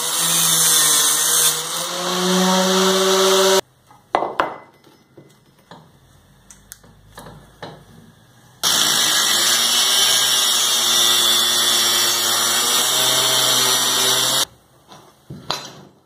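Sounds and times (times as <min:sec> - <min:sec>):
angle grinder cutting steel: 0:00.0 - 0:03.6, 0:08.6 - 0:14.5.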